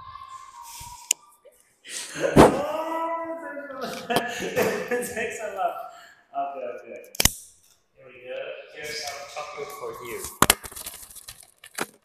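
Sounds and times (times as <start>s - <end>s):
packaging crinkling: 10.2s - 12.0s
packaging snapping: 10.2s - 12.0s.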